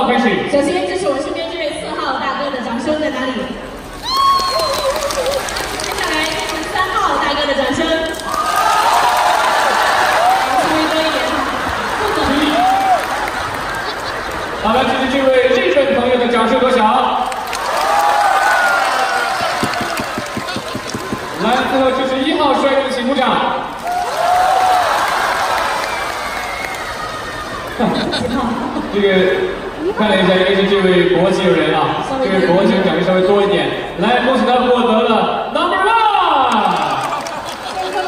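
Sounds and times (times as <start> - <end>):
audience applauding: 3.8 - 7.2, 8.0 - 15.4, 17.2 - 22.2, 23.8 - 28.1, 36.5 - 38.0
people whooping: 4.0 - 6.5, 8.2 - 14.3, 17.5 - 22.0, 23.8 - 28.1.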